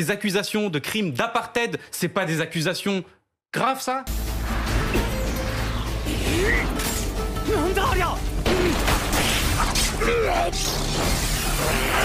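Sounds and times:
action music: 0:04.1 - 0:12.0.

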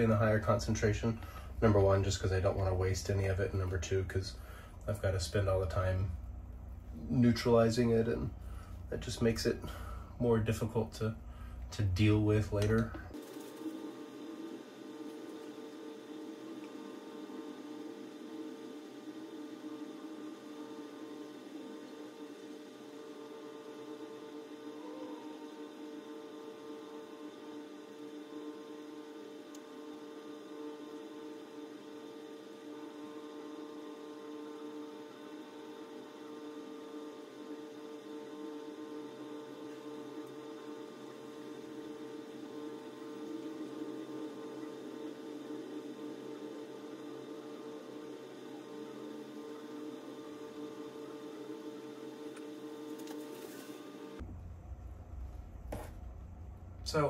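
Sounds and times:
electrical appliance hum: 0:00.0 - 0:57.0.

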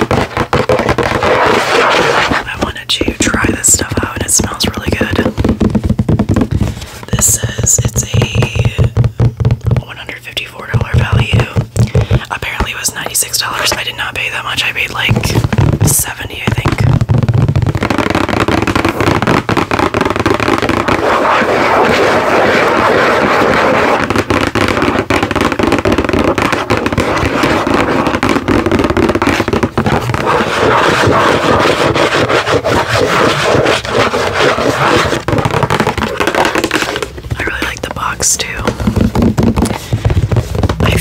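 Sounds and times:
fingernails tapping on cardboard box: 0:00.0 - 0:02.4, 0:04.4 - 0:13.8, 0:23.5 - 0:37.3, 0:38.0 - 0:41.0.

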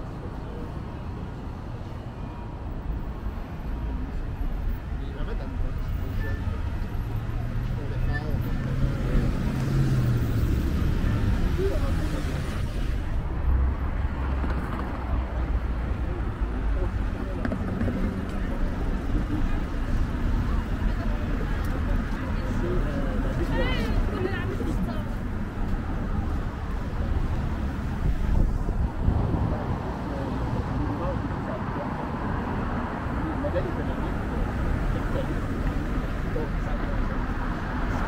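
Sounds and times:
street traffic rumble: 0:00.0 - 0:38.0.

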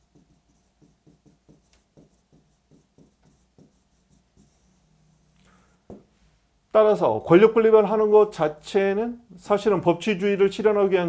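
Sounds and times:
stylus strokes and taps on screen: 0:00.0 - 0:06.1
low room hum: 0:00.0 - 0:11.0.

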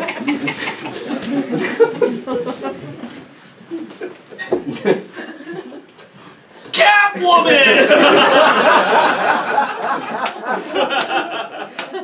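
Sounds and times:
audience laughing: 0:00.0 - 0:05.8, 0:07.5 - 0:12.0.

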